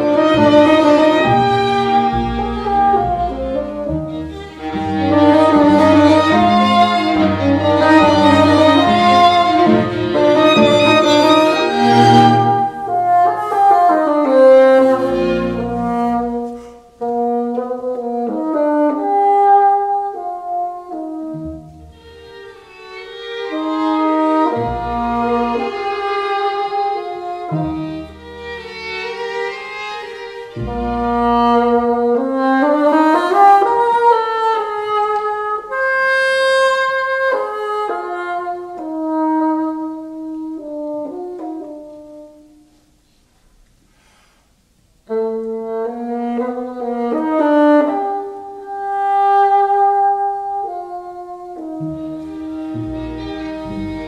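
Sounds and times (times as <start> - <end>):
string ensemble playing: 0.0 - 42.0, 45.4 - 54.0
solo bassoon melody: 0.0 - 43.0, 45.0 - 54.0.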